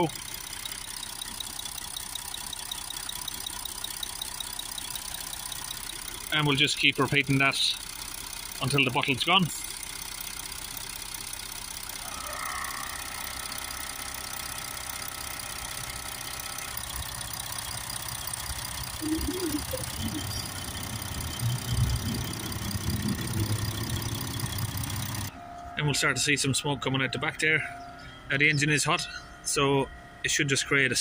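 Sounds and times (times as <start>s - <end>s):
diesel engine idling: 0.0s - 31.0s.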